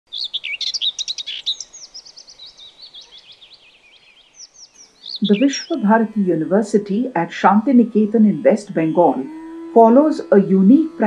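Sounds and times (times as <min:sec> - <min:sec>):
birds chirping: 0:00.1 - 0:11.0.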